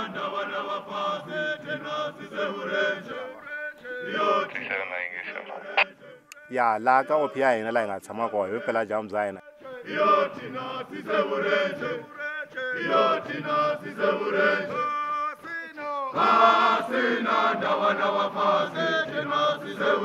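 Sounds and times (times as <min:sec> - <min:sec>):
men chanting together: 0:00.0 - 0:04.6, 0:05.6 - 0:20.0.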